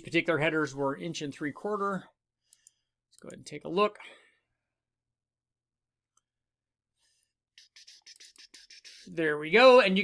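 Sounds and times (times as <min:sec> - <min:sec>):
faint small clicks and ticks: 0:02.4 - 0:03.6.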